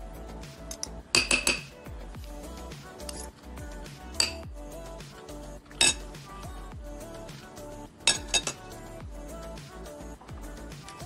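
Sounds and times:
background music with beat: 0:00.0 - 0:11.0
cutlery clinking on plate: 0:01.2 - 0:01.7, 0:05.8 - 0:06.0, 0:08.1 - 0:08.6.

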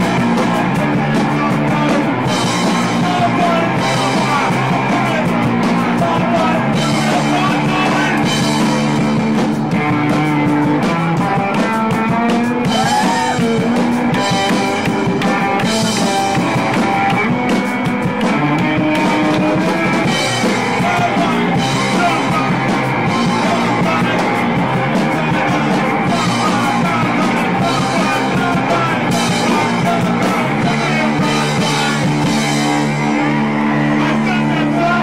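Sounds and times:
distorted electric guitar: 0:00.0 - 0:35.0
drum kit: 0:00.0 - 0:35.0.

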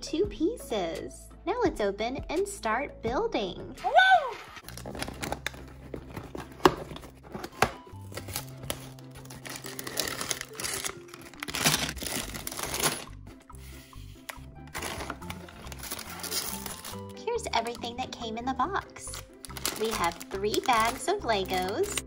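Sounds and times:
background music: 0:00.0 - 0:22.0
plastic bags crinkling: 0:04.6 - 0:13.2, 0:14.2 - 0:17.9, 0:18.8 - 0:22.0
cardboard box flaps tearing: 0:06.0 - 0:13.1.

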